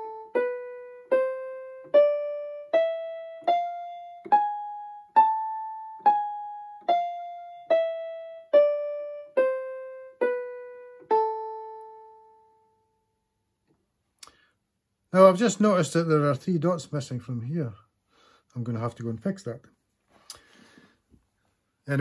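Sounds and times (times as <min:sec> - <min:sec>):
electronic keyboard playing scale: 0:00.0 - 0:13.0.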